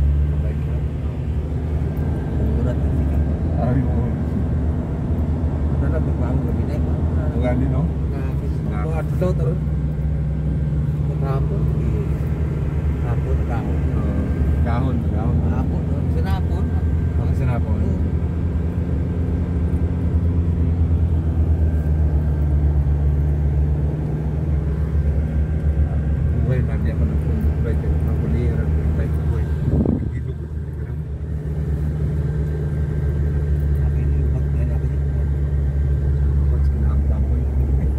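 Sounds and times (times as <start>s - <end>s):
car engine and road noise: 0.0s - 37.9s.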